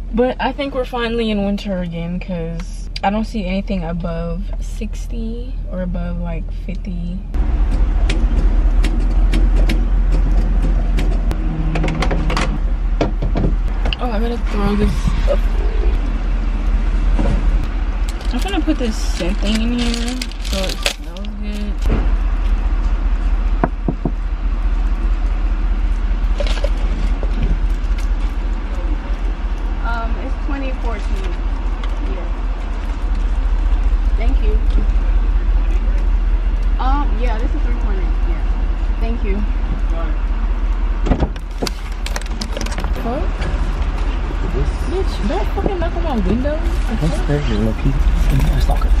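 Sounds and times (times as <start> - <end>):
car engine idling: 0.0 - 49.0
plastic packaging rustling: 18.0 - 21.9.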